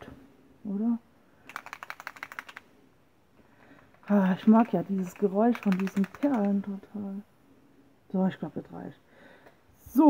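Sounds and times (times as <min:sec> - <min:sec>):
beads rattling in shaken bottle: 0:01.5 - 0:02.6, 0:03.8 - 0:06.7.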